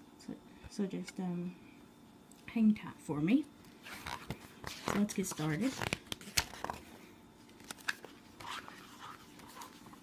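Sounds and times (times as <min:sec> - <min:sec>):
paper pages turning: 0:03.9 - 0:06.9, 0:07.5 - 0:10.0.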